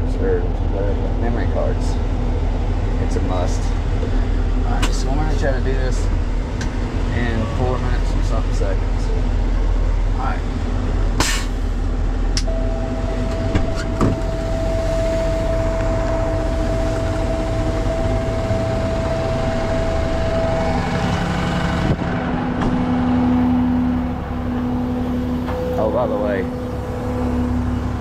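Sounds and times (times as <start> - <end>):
diesel truck engine running: 0.0 - 28.0
steady whine: 0.2 - 28.0.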